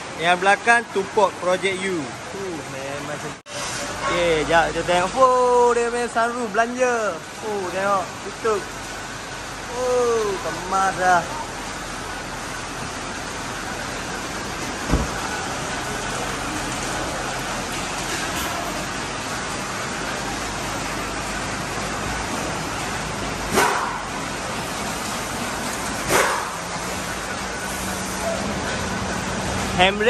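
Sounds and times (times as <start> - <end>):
car workshop background noise: 0.0 - 30.0
car door shutting: 14.8 - 15.4.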